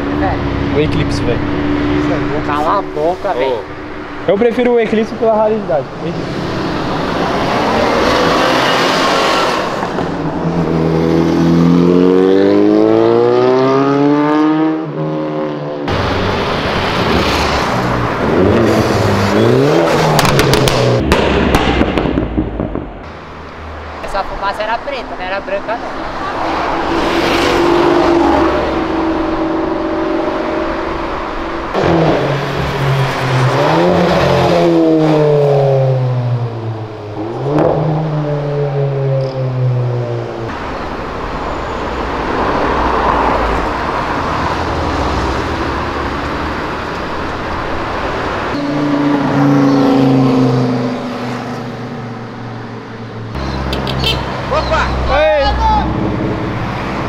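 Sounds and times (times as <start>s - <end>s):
cars accelerating past: 0.0s - 57.0s.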